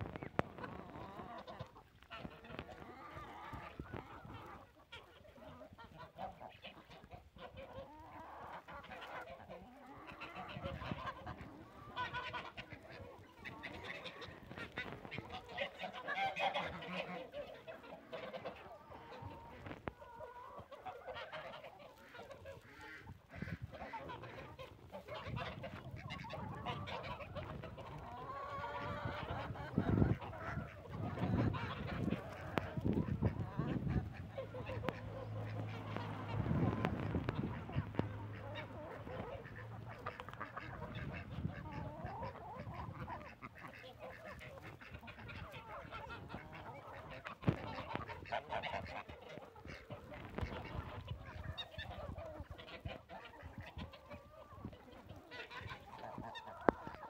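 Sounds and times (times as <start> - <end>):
chickens and ducks calling: 0.0 - 57.0.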